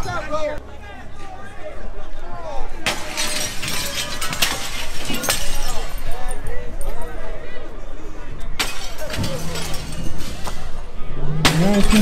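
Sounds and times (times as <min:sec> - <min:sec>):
window glass smashing: 0:02.8 - 0:06.1, 0:08.6 - 0:10.7, 0:11.5 - 0:12.0.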